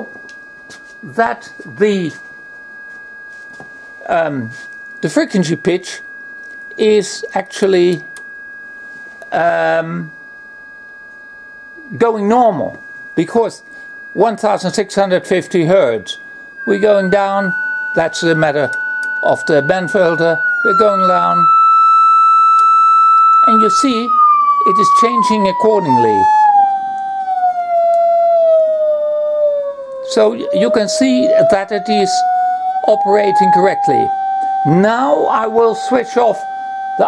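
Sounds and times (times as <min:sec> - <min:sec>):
faint lower tone: 0:00.0 - 0:37.0
sine test tone: 0:00.0 - 0:37.0.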